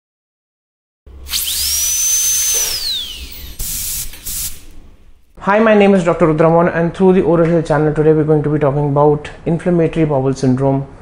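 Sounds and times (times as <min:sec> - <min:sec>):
dental drill whine: 0:01.1 - 0:05.2
hiss: 0:01.3 - 0:04.8.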